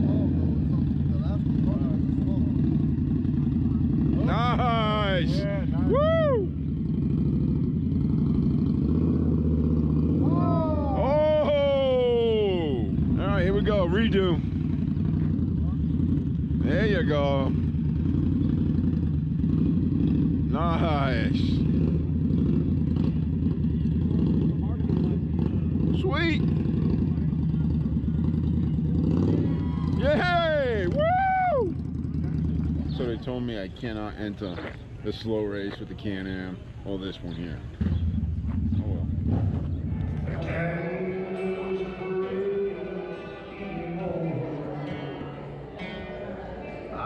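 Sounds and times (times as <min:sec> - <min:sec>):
motorcycle engine idling: 0:00.0 - 0:42.8
faint voices: 0:23.2 - 0:47.0
man singing: 0:40.3 - 0:45.1.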